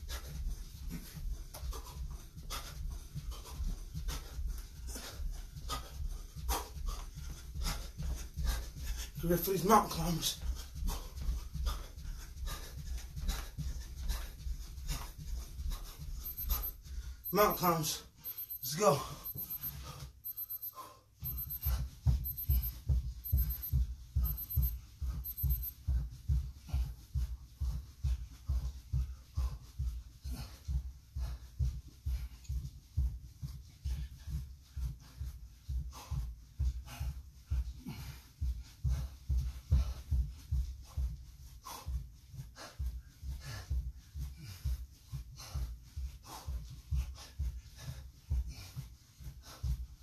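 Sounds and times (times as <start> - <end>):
feet thudding on carpet: 0.0 - 9.2, 21.6 - 50.0.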